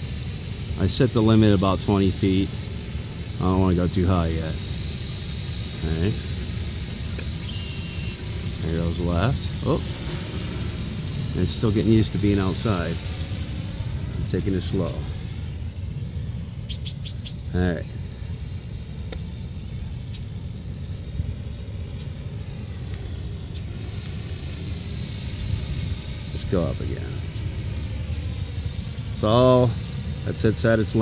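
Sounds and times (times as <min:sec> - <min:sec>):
drone motors whining: 0:00.0 - 0:31.0.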